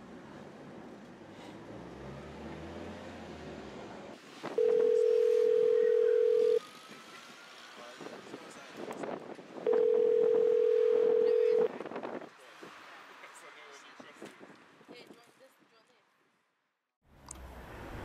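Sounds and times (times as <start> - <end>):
telephone ringback tone: 4.6 - 6.6, 9.7 - 11.7.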